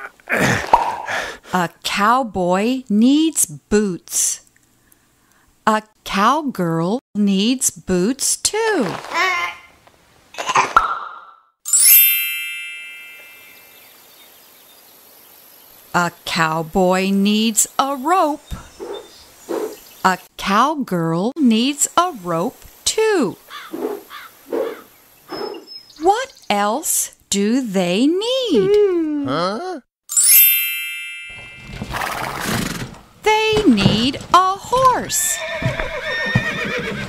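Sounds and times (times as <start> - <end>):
bright bell-like chime: 11.7 - 13.9, 30.1 - 31.8.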